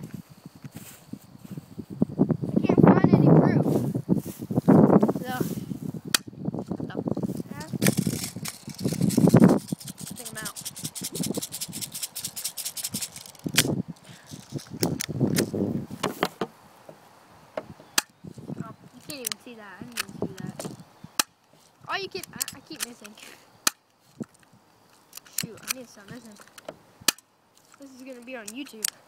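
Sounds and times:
rubbing and handling noise: 3.6s - 6.0s, 6.6s - 26.8s, 27.5s - 29.0s.

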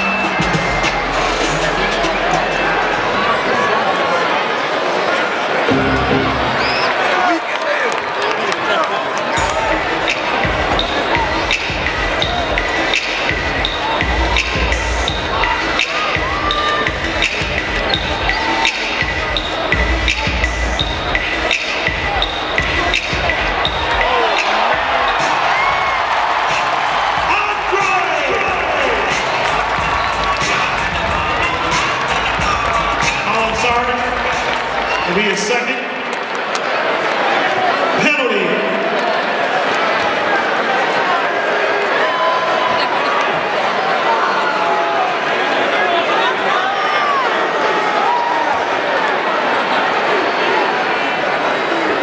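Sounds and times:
music over loudspeakers: 0.0s - 3.2s, 5.7s - 6.6s, 9.4s - 36.0s
crowd chatter and calls: 0.0s - 52.0s.

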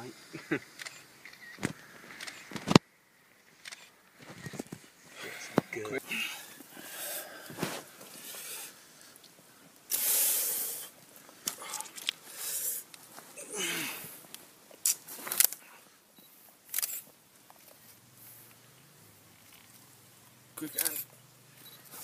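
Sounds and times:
rustling: 3.4s - 13.4s
burst of hiss: 9.9s - 11.0s, 11.6s - 12.9s.

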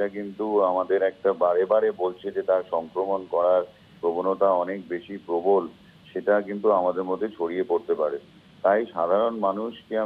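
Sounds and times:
man talking over a phone line: 0.0s - 10.0s.

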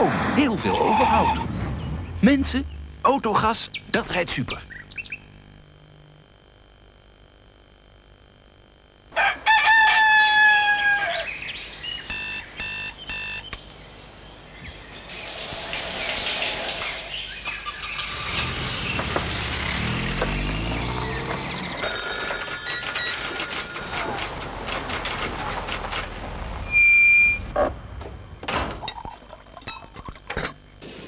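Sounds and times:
rooster crowing: 9.1s - 11.4s
short tone pulses: 26.6s - 28.4s.

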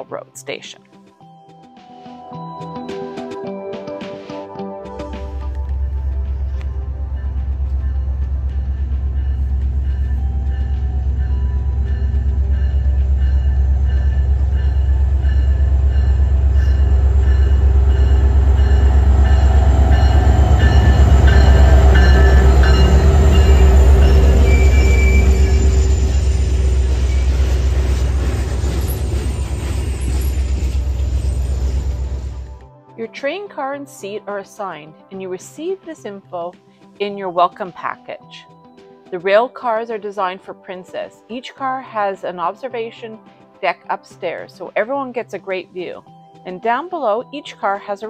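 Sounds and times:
diesel locomotive engine rumble: 5.3s - 32.6s
passenger cars rolling by: 5.5s - 32.6s.

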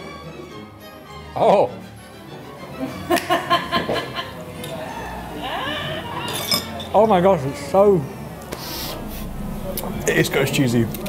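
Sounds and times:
metal fork clinking on dish: 6.3s - 6.9s.

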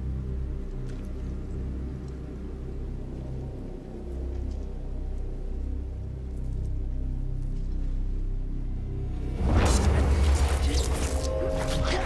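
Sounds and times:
low rumbling film score drone: 0.0s - 12.0s.

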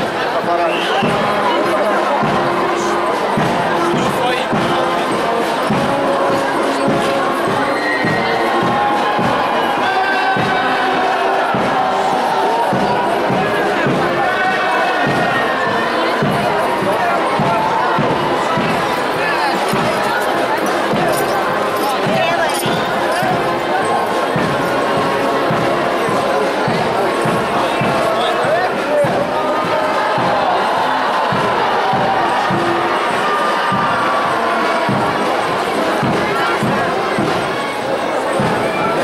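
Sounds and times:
crowd voices: 0.0s - 39.0s
procession music: 0.4s - 39.0s.

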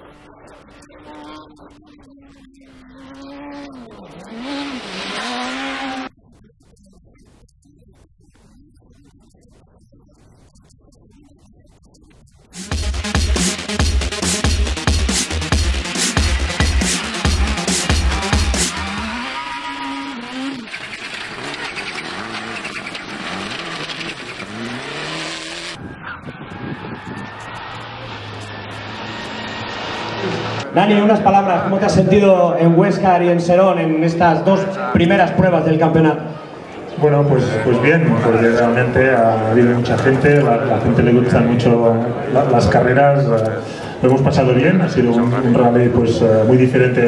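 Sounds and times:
rally car engine at high revs: 0.0s - 6.2s, 12.6s - 30.8s.

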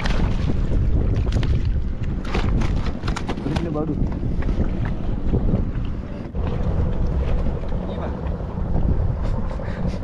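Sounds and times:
sea water lapping at boat: 0.0s - 10.0s
wind buffeting microphone: 0.0s - 10.0s.

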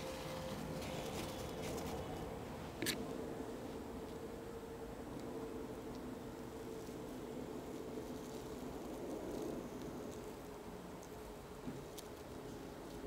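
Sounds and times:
low background hum: 0.0s - 13.0s
soft ticks and rustles from hands: 7.7s - 13.0s.

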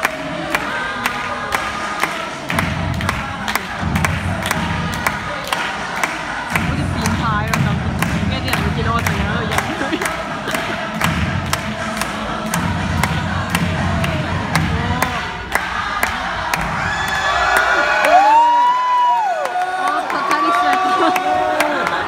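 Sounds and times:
pop dance music over speakers: 0.0s - 19.1s
audience cheering: 14.6s - 22.0s.

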